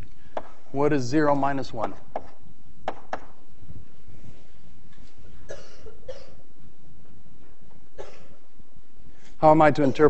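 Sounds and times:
room noise: 0.0s - 10.0s
person coughing: 5.4s - 6.5s, 8.0s - 8.4s.

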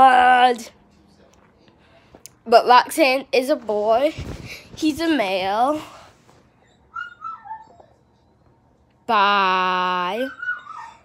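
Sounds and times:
dog whining: 6.6s - 8.1s, 10.2s - 11.0s.

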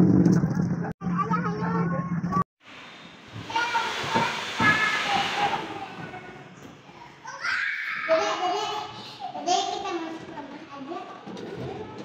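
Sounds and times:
children's voices: 3.4s - 12.0s
children playing: 3.5s - 12.0s.

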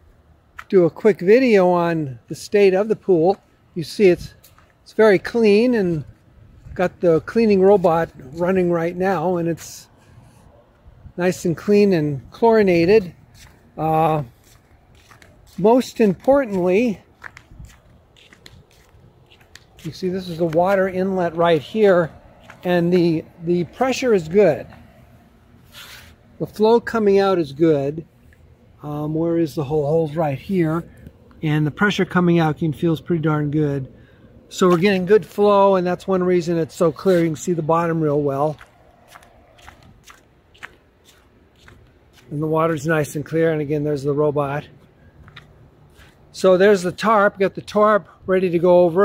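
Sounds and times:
low background noise: 0.0s - 49.0s
footsteps on concrete: 4.2s - 10.9s, 12.2s - 27.2s, 34.6s - 35.4s, 36.4s - 43.6s, 44.7s - 46.9s.

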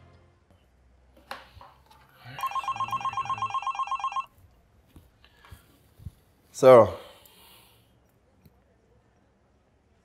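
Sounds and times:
telephone ringing electronic trill: 2.4s - 4.3s.

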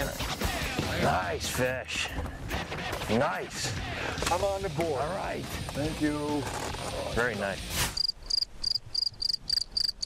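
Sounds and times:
cricket chirping: 8.0s - 10.0s.

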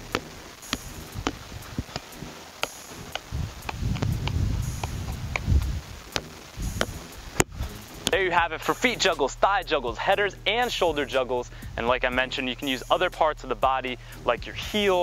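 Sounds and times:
soccer ball touches: 0.0s - 8.2s
low rumble: 0.0s - 10.6s.

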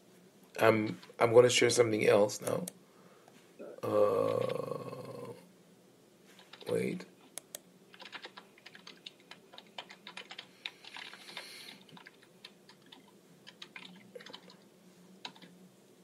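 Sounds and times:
typing on keyboard: 6.4s - 6.8s, 7.9s - 14.6s, 15.2s - 15.5s.

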